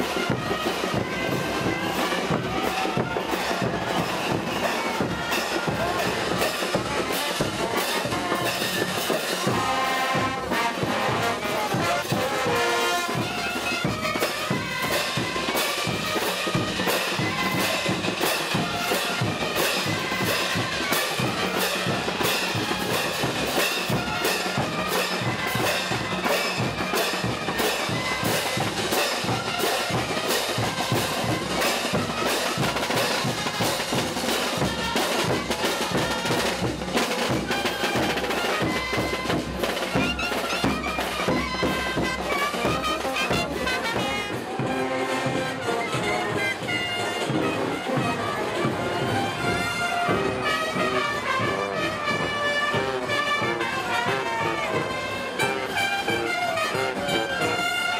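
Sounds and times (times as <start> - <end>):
trombones: 0.0 - 57.9
trumpets: 0.0 - 57.9
tubas: 0.0 - 57.9.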